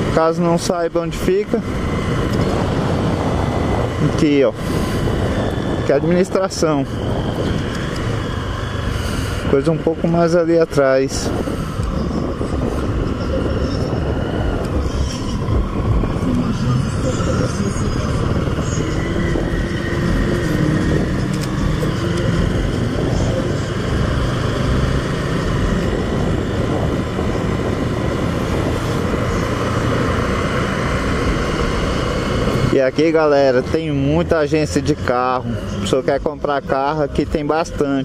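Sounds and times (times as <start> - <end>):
motorcycle engine running: 0.0 - 38.0
road noise: 0.0 - 38.0
wind noise: 0.0 - 38.0.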